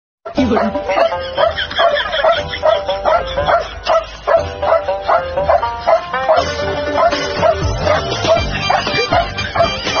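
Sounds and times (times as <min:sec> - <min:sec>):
background music: 0:00.3 - 0:10.0
dog barking rapidly: 0:00.3 - 0:10.0.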